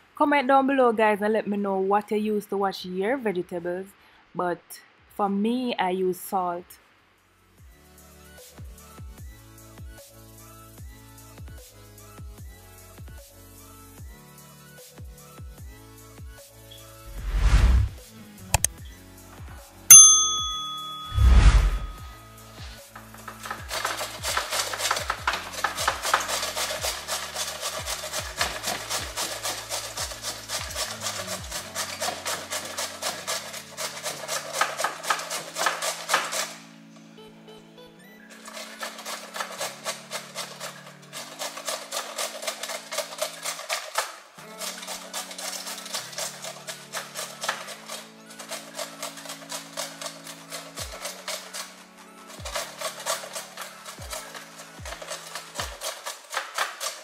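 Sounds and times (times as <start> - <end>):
cauliflower grated on metal grater: 22.6 - 36.6, 38.3 - 57.0.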